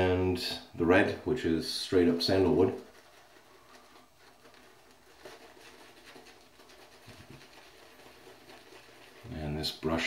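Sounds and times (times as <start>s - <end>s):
shaving brush scratching on skin: 1.9s - 10.0s.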